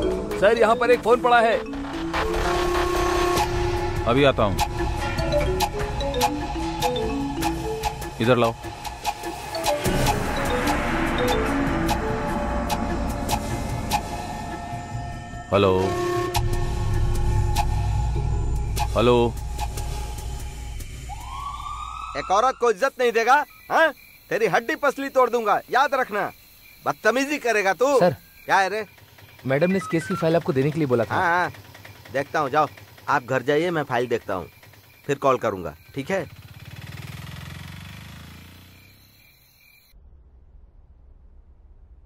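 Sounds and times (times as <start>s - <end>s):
vehicle engine running: 0.0s - 21.1s, 30.2s - 39.1s
man speaking into phone: 29.5s - 31.5s.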